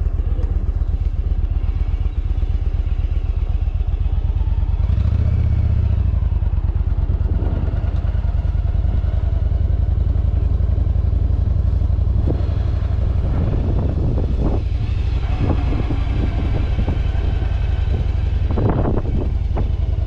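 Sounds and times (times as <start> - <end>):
motorcycle engine running: 0.0 - 20.0.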